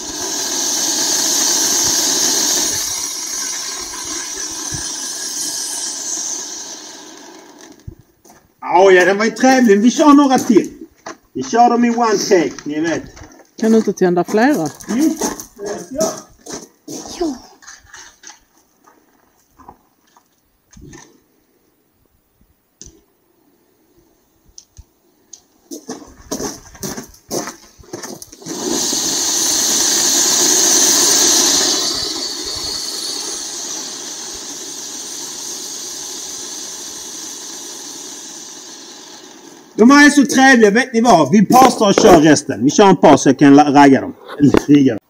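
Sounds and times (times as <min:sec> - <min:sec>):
firework spraying sparks hiss: 0:00.0 - 0:07.0, 0:28.4 - 0:39.5.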